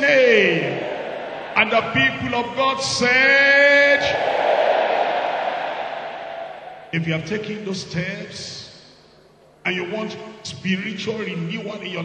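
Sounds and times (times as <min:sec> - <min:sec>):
congregation saying amen: 0:00.0 - 0:04.4, 0:06.9 - 0:08.9.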